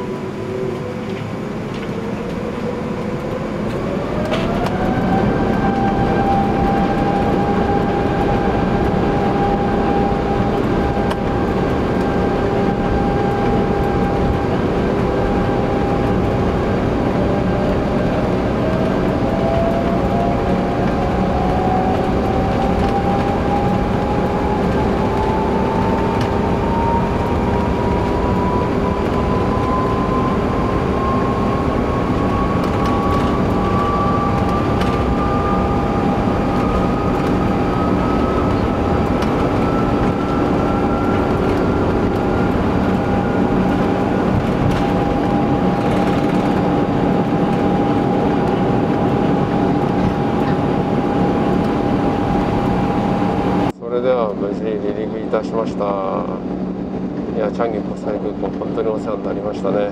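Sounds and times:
jet engines spooling up: 0.0s - 59.9s
loud cabin rumble: 0.0s - 59.9s
whine rising in pitch: 0.0s - 59.9s.

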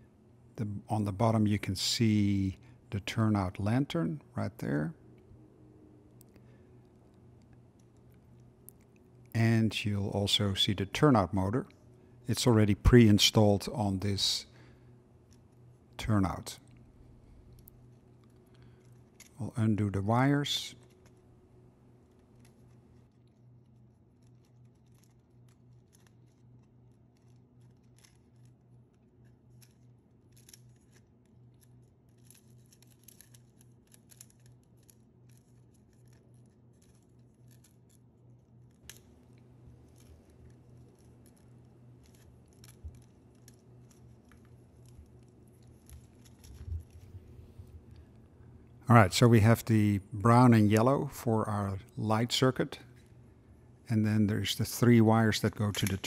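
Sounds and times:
low steady hum: 0.0s - 56.0s
small irregular clicks: 22.0s - 47.2s
rustling of wires: 22.0s - 48.6s.

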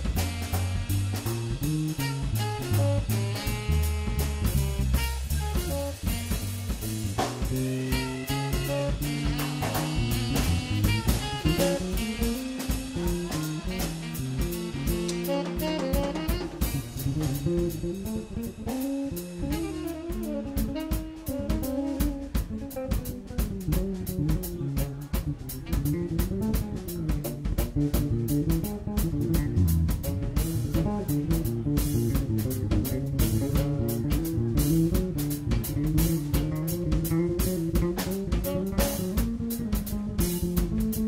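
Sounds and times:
bass guitar: 0.0s - 41.0s
drum kit groove: 0.0s - 41.0s
tenor saxophone: 0.0s - 41.0s.

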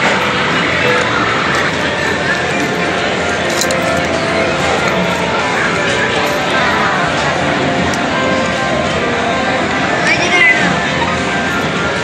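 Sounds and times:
arcade background music: 0.0s - 12.0s.

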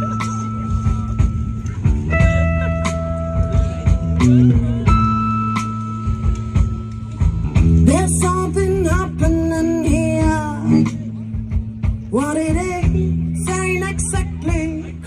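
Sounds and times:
bass line: 0.0s - 15.0s
drums: 0.0s - 15.0s.

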